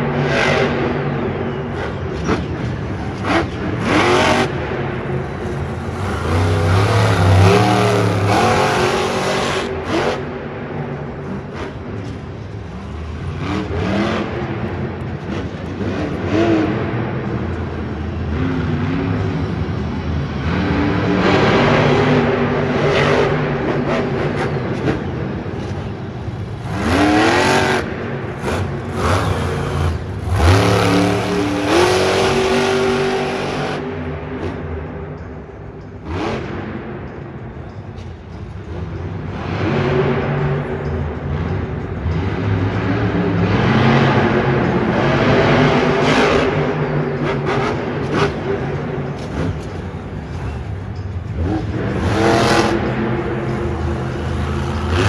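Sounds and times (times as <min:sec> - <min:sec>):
truck engine revving: 0:00.0 - 0:34.8, 0:38.9 - 0:55.0.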